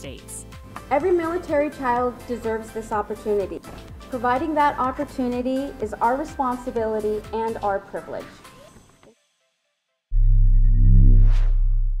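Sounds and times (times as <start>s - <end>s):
deep bass tone: 10.1s - 12.0s.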